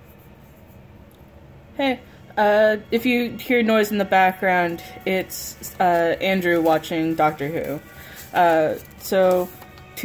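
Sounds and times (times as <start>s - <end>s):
television playing: 0.0s - 10.0s.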